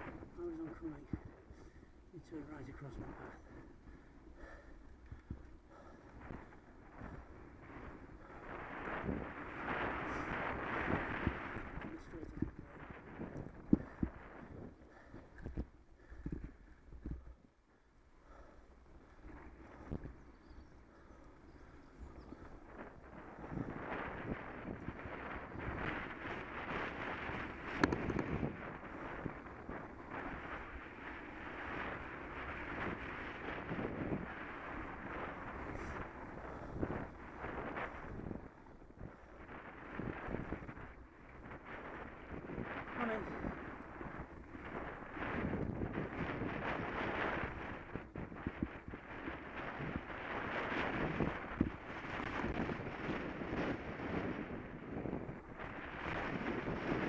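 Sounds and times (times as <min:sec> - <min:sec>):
bike tyres rumbling on tarmac: 0:00.0 - 0:57.0
wind buffeting microphone: 0:00.0 - 0:57.0.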